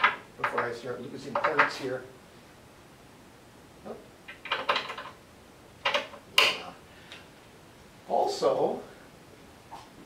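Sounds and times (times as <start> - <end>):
small metal parts rattling and clicking: 4.3 - 5.2.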